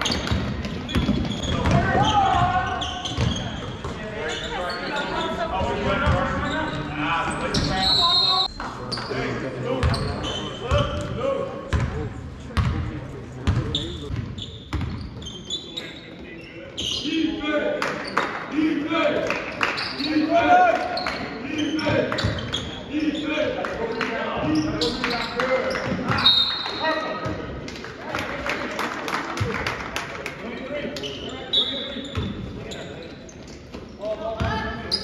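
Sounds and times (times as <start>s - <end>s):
basketball bouncing on wooden floor: 0.1s - 2.5s.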